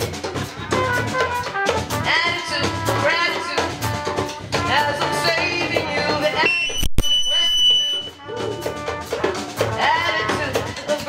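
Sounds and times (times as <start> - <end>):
live band music: 0.0 - 11.0
high steady whistling tone: 6.4 - 8.3.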